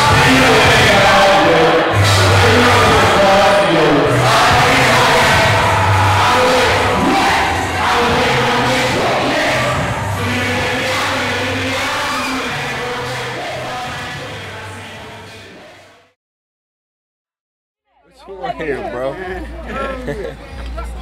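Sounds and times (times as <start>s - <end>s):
crowd voices: 0.0s - 15.9s, 17.9s - 21.0s
rap track with heavy bass: 0.0s - 16.0s, 18.2s - 21.0s.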